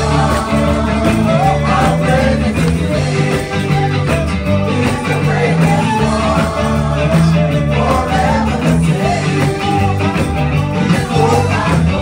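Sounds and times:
instrumental backing: 0.0s - 12.0s
worship singing: 0.0s - 12.0s.

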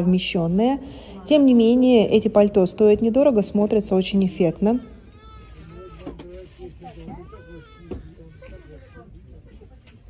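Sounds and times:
people talking in background: 0.0s - 10.0s.

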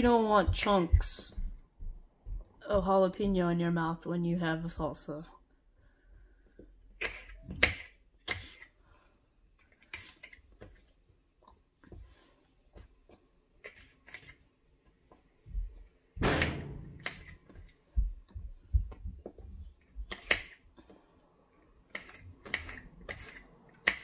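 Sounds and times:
knife cutting on countertop: 7.0s - 8.7s, 16.9s - 17.8s, 20.1s - 20.6s, 21.9s - 24.0s.

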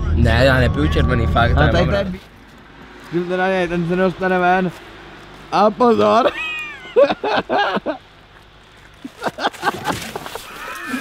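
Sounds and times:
body falling into snow: 9.0s - 11.0s.

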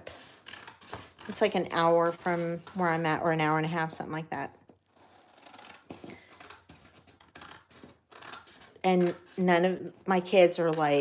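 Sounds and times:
scissors snipping paper: 0.0s - 3.1s, 4.9s - 11.0s.

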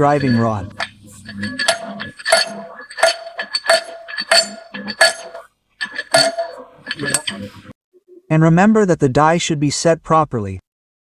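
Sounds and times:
sharp metallic clinks: 0.0s - 7.6s.

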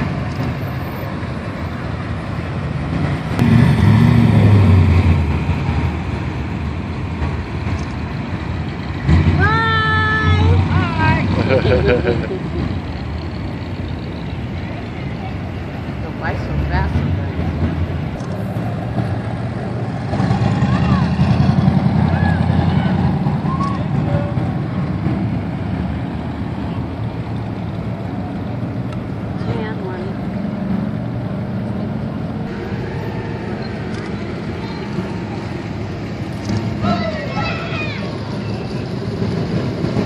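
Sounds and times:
classic car engines passing slowly: 0.0s - 40.0s.

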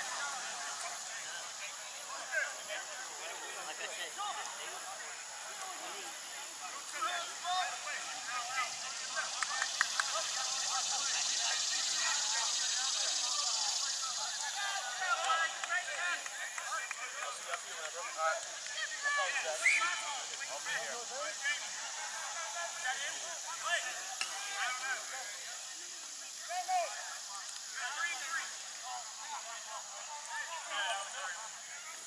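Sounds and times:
distant voices shouting: 0.0s - 32.0s
steady high hiss: 0.0s - 32.0s.

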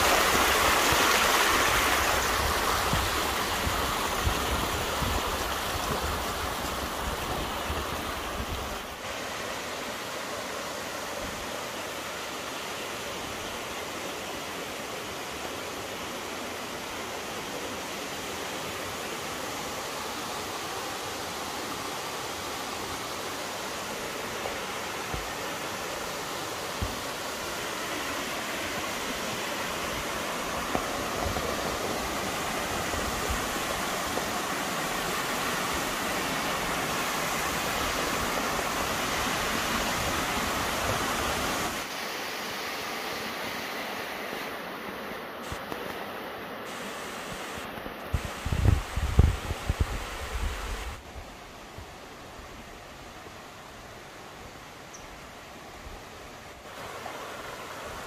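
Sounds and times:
stream rushing over boulders: 0.0s - 58.0s.

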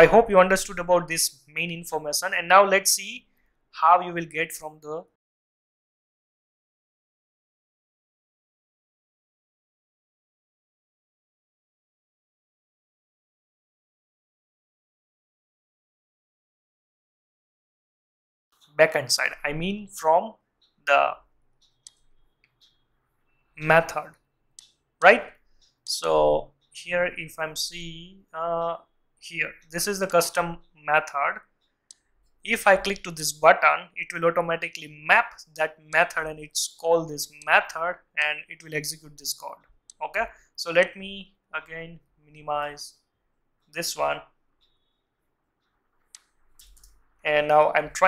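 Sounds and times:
faint computer clicks: 21.6s - 26.8s, 28.7s - 33.3s, 45.6s - 47.2s.

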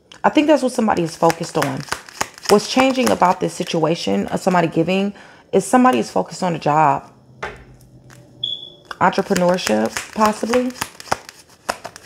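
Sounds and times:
cards rustling: 1.0s - 3.8s, 9.0s - 12.0s
high-pitched tone: 8.4s - 8.9s.

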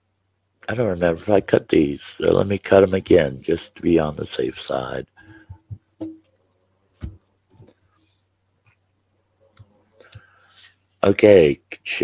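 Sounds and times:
cards knocking on a table: 5.7s - 6.3s.

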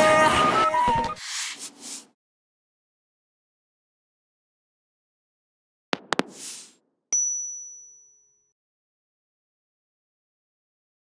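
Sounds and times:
high-pitched bell ding: 7.2s - 8.5s.

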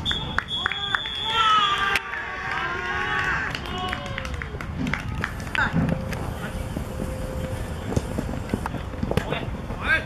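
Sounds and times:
young players shouting: 0.7s - 4.5s.

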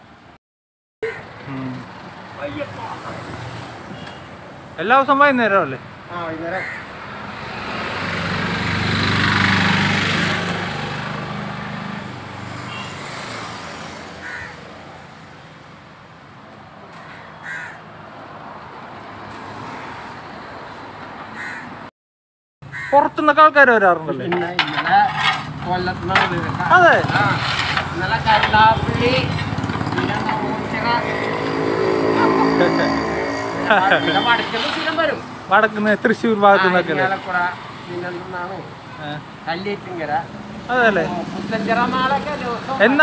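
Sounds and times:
street traffic hum: 0.0s - 0.4s, 1.0s - 21.9s, 22.6s - 43.0s
crow cawing: 6.5s - 6.9s, 14.2s - 14.6s, 16.9s - 17.9s, 21.3s - 21.8s, 22.7s - 23.1s.

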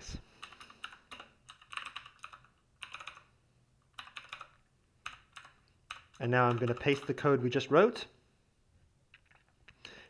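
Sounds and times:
keyboard typing: 0.4s - 7.4s, 9.1s - 9.8s.

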